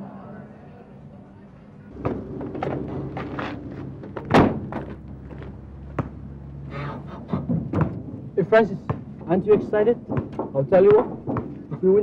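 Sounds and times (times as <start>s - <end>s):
low steady hum: 0.0s - 12.0s
truck door slamming: 2.0s - 5.1s.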